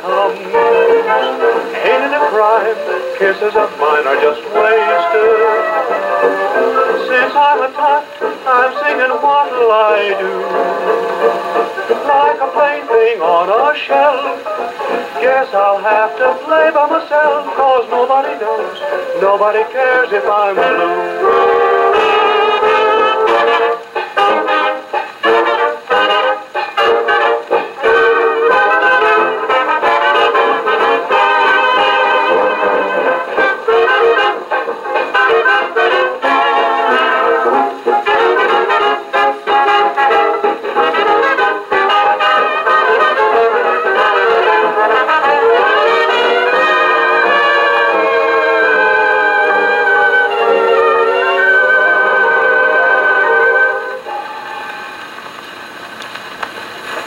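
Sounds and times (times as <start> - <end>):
brass dance band record: 0.0 - 55.2
needle noise in groove: 0.0 - 55.6.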